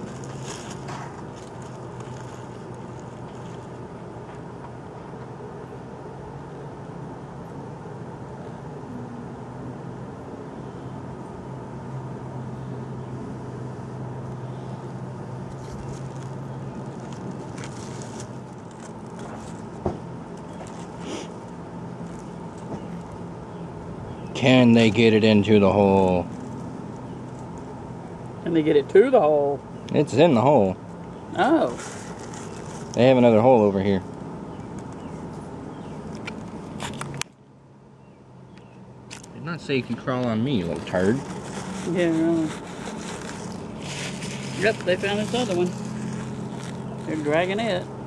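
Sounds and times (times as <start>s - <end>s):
low background hum and rumble: 0.0s - 48.0s.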